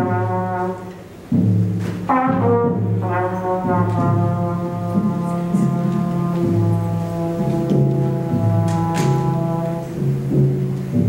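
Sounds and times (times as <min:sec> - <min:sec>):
trumpet playing slow melody: 0:00.0 - 0:01.3, 0:01.9 - 0:11.0
light drum kit: 0:00.0 - 0:11.0.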